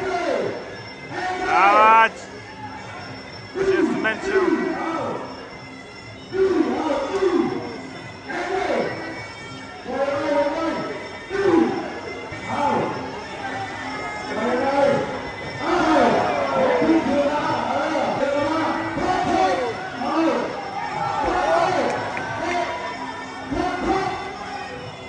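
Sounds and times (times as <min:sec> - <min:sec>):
faint music: 0:00.0 - 0:25.0
man speaking over loudspeakers: 0:01.2 - 0:02.3, 0:03.6 - 0:05.1.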